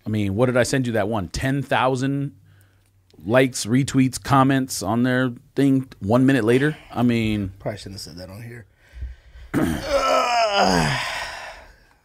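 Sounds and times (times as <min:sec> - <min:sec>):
man groaning: 0:09.5 - 0:11.6.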